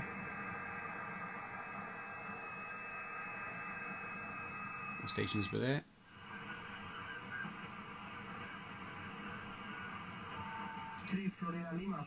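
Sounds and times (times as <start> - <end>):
steady data tones: 0.0 - 5.6
radio band noise hiss: 0.0 - 12.0.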